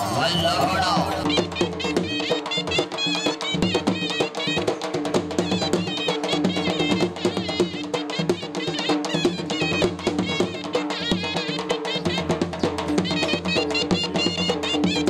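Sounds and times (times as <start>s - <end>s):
rapid continuous drumming: 0.0s - 15.0s.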